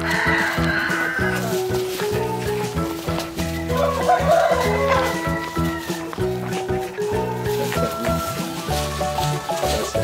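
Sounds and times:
rooster crowing: 0.0s - 1.6s, 3.7s - 6.1s
background music: 0.0s - 10.0s.

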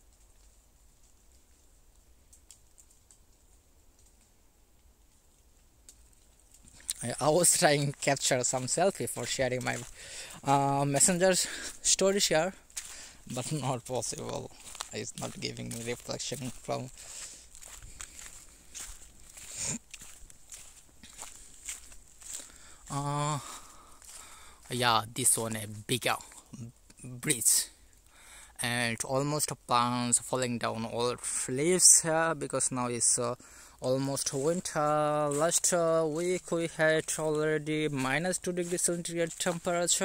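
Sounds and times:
faint sharp clicks: 0.0s - 7.0s
footsteps on fallen leaves: 5.4s - 26.5s, 30.2s - 40.0s.

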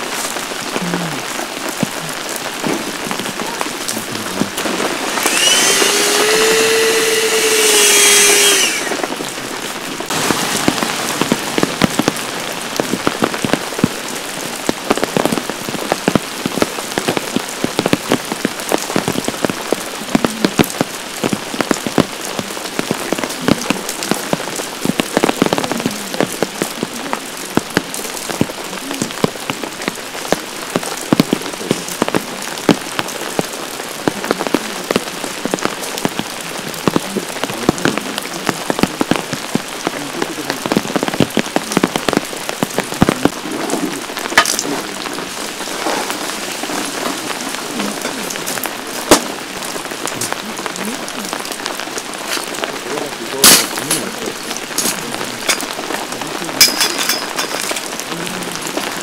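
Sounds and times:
heavy rain falling: 0.0s - 59.0s.

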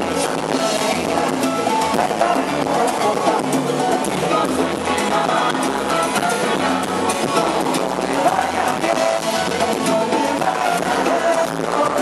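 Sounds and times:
drums and latin percussion: 0.0s - 12.0s
live salsa band over pa: 0.0s - 12.0s.

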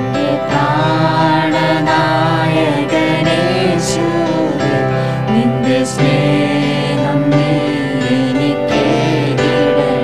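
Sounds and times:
man and girl singing a hymn: 0.0s - 10.0s.

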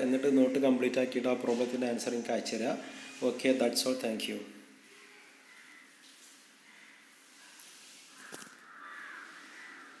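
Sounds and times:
faint animal call: 6.6s - 10.0s.

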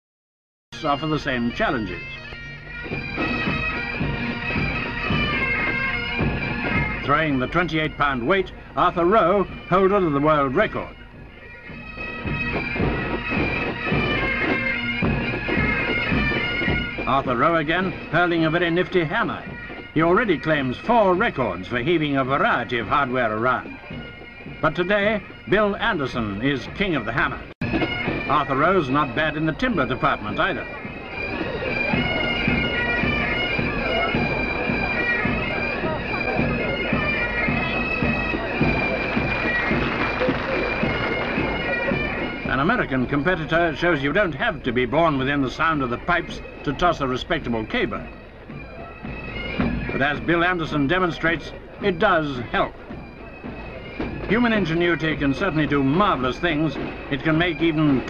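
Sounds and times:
bagpipe music: 0.8s - 58.0s.

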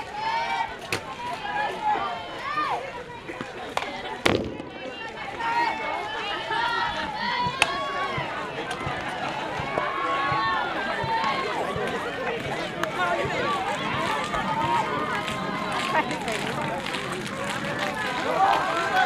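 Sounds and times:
people shouting and cheering: 0.0s - 19.0s
bat hitting ball: 4.2s - 4.8s.

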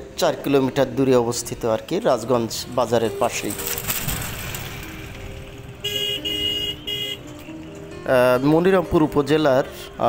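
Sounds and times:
motorcycle passing: 2.6s - 7.7s
vehicle horn beeping: 5.8s - 7.3s.

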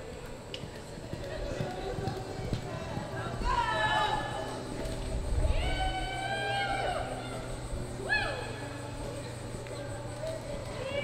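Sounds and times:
horse hoofbeats on dirt: 0.0s - 4.2s.

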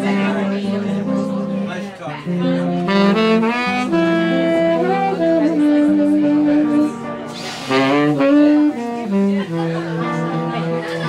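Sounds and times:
saxophone playing jazz ballad: 0.0s - 11.0s.

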